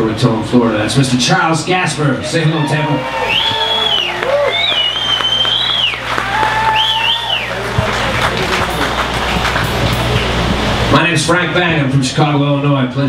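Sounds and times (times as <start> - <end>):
audience applauding and cheering: 2.4 - 10.9
band playing softly: 2.9 - 12.5
high whistles: 3.2 - 7.6.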